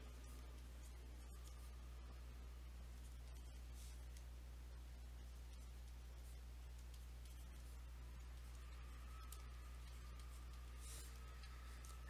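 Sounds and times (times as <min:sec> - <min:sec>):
stylus scratching on tablet: 0:00.0 - 0:02.2, 0:02.8 - 0:04.4, 0:05.1 - 0:12.0
low steady hum: 0:00.0 - 0:12.0.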